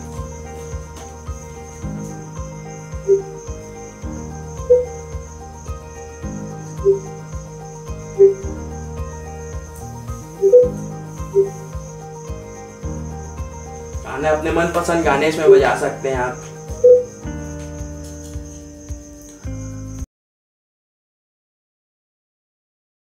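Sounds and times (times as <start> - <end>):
bright melody notes: 0.0 - 19.9.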